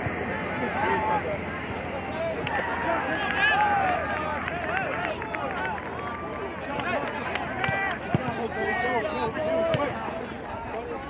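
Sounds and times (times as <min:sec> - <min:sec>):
voices shouting indistinctly: 0:00.6 - 0:10.2.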